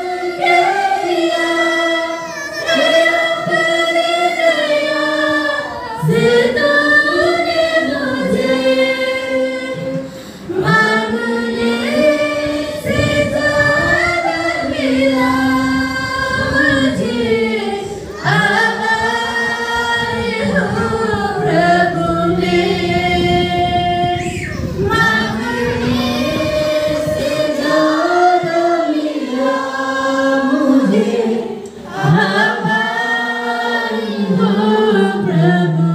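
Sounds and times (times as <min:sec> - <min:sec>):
congregation singing: 0:00.0 - 0:35.9.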